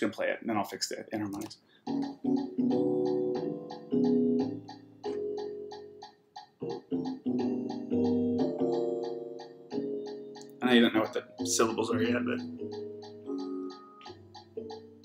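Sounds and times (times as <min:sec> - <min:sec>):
steady fast ticking: 0:01.4 - 0:15.0.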